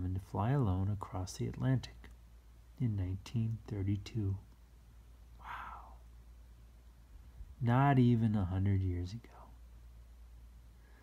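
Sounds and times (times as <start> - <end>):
person speaking: 0.0 - 4.6, 7.4 - 9.6
faint low hum: 0.0 - 11.0.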